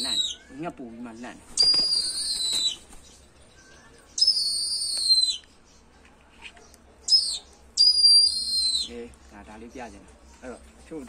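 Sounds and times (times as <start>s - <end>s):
bird of prey whistled calls: 0.0s - 0.6s, 1.5s - 2.9s, 3.6s - 5.5s, 7.1s - 9.0s.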